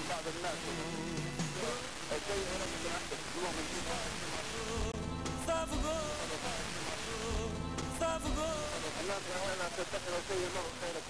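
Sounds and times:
faint song on radio: 0.0s - 11.0s
radio static hiss: 0.0s - 11.0s.

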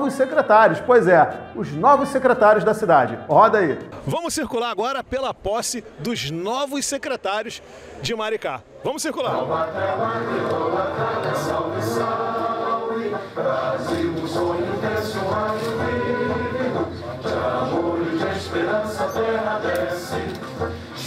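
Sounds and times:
choir singing an anthem: 9.1s - 21.0s
musical accompaniment: 9.4s - 21.0s.

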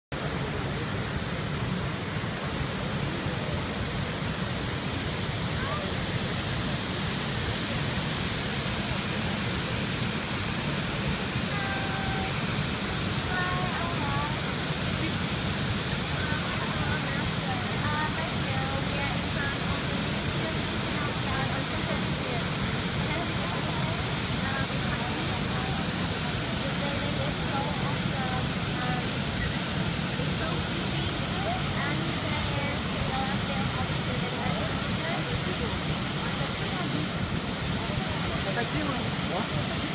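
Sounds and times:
water rushing down cascade: 0.1s - 39.9s.

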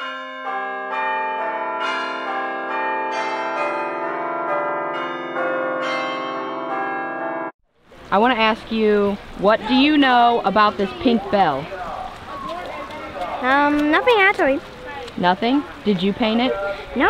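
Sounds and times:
bells ringing: 0.0s - 7.5s.

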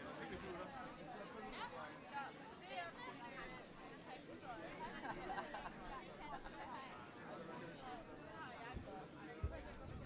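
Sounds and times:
faint chatter of voices: 0.0s - 10.0s.

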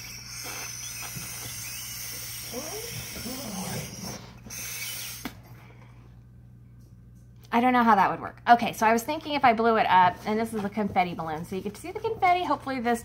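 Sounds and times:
balloon squeak: 0.0s - 5.4s.

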